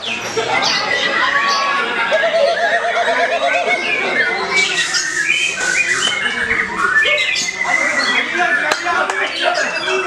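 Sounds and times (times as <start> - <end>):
songbird whistling: 2.2 - 10.0.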